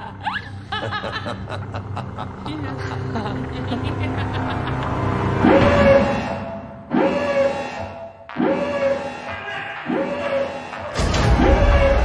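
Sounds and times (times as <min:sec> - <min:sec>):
tense film score: 0:00.0 - 0:12.0.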